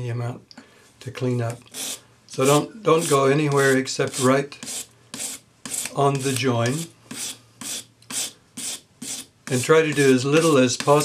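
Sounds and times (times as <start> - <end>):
sandpaper scrubbing metal: 1.7 - 11.0.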